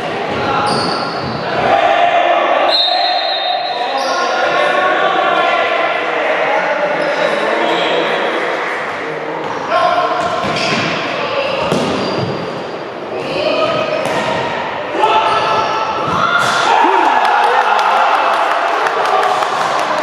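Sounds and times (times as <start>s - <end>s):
players calling and shouting: 9.4s - 20.0s.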